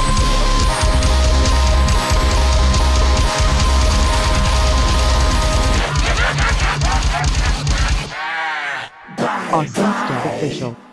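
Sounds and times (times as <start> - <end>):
drumstep music with heavy bass: 0.0 - 8.2
gliding voice-like sounds: 8.4 - 10.9.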